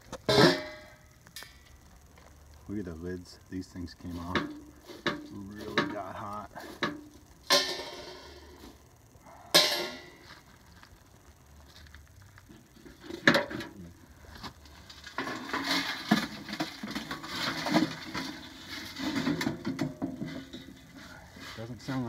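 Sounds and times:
wood chips rattling in pan: 3.5s - 8.5s, 14.5s - 22.0s.

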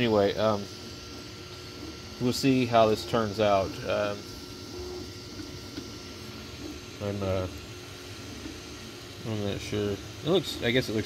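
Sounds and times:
faint steady whine: 0.0s - 11.0s
printer fans and motors whirring: 0.0s - 11.0s.

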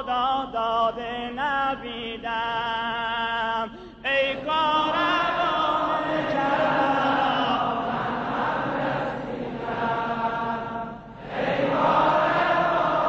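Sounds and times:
men chanting a lament: 0.0s - 13.0s.

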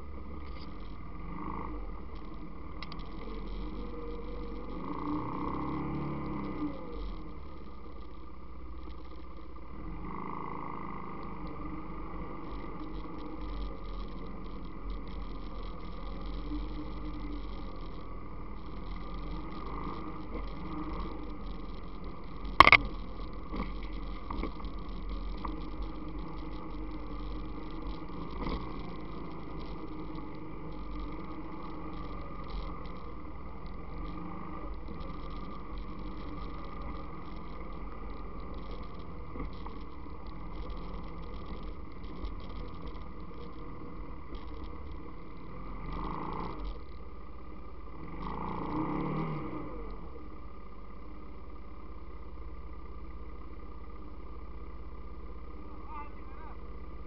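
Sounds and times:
atv engine running: 0.0s - 57.0s
engine revving: 0.8s - 8.0s, 9.7s - 47.0s, 47.9s - 50.4s.

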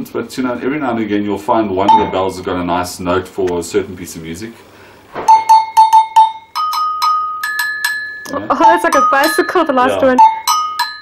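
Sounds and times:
agogo bells struck with stick: 5.2s - 11.0s.

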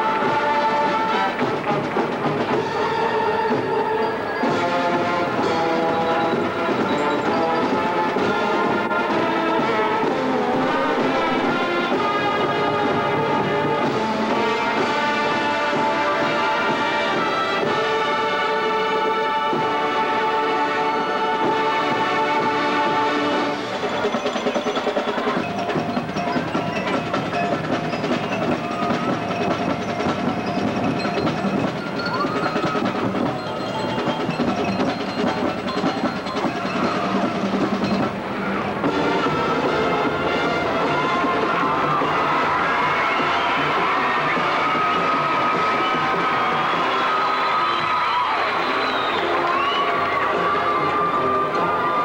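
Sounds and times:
marching band playing: 0.0s - 52.0s.

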